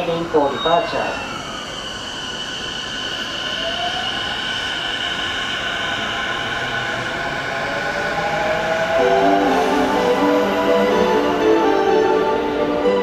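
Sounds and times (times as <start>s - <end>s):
train motor whine rising in pitch: 0.0s - 13.0s.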